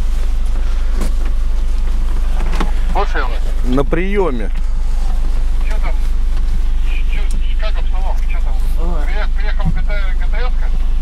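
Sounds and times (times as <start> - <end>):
low engine drone: 0.0 - 11.0.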